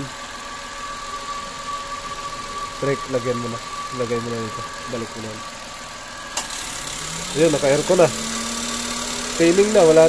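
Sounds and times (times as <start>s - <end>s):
car engine idling: 0.0s - 10.0s
constant high whine: 0.0s - 10.0s.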